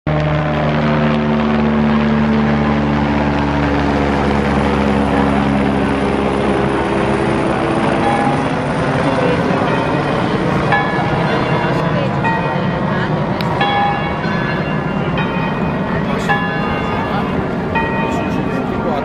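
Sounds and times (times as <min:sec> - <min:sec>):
helicopter rotor drone: 0:00.1 - 0:19.0
crowd voices: 0:00.6 - 0:19.0.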